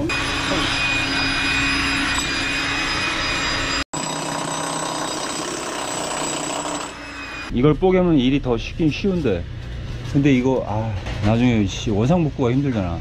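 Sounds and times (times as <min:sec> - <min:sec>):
demolition hammer chiselling concrete: 0:04.0 - 0:07.0.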